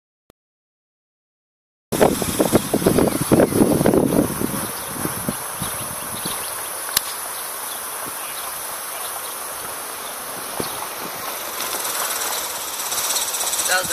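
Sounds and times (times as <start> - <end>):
high insect buzz: 2.0 - 13.9.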